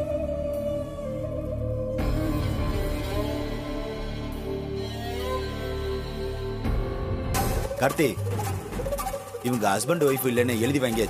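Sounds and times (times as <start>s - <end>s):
dramatic background music: 0.0s - 11.0s
person speaking: 9.4s - 11.0s.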